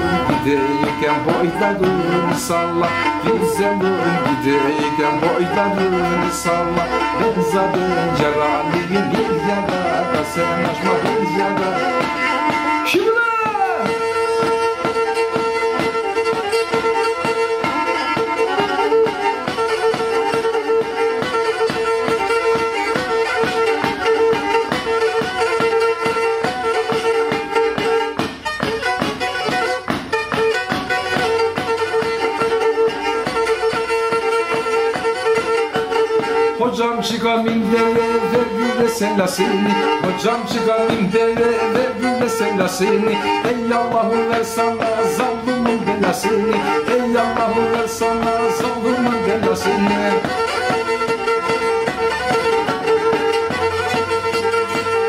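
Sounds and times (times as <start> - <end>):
bowed fiddle played solo: 0.0 - 55.0.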